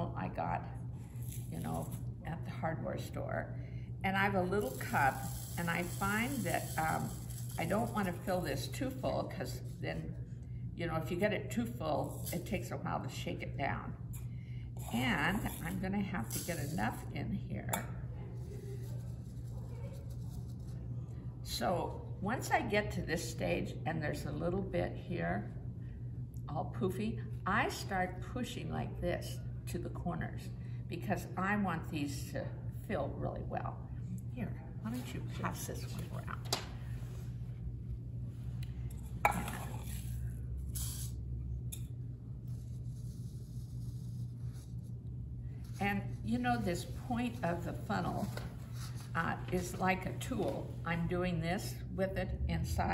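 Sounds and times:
low electrical hum: 0:00.0 - 0:52.9.

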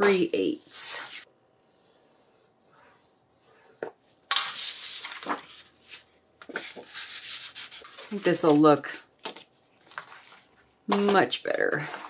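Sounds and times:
paper rustling and sliding: 0:04.3 - 0:10.7
paper scraping: 0:04.4 - 0:10.6.

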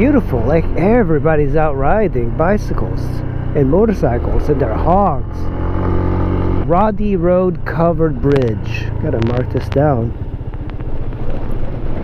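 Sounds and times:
scooter engine running: 0:00.0 - 0:12.0.

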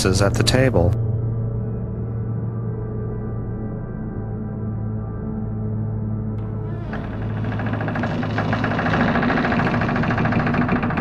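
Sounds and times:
low droning ambient music: 0:00.0 - 0:11.0
loud fast engine-like rattling: 0:06.4 - 0:11.0.

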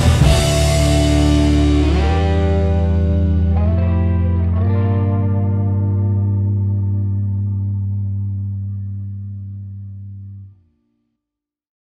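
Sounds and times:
distorted electric guitar chord: 0:00.0 - 0:10.5.

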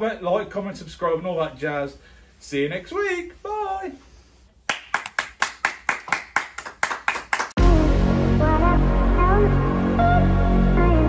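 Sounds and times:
hands clapping in rhythm: 0:04.6 - 0:07.6.

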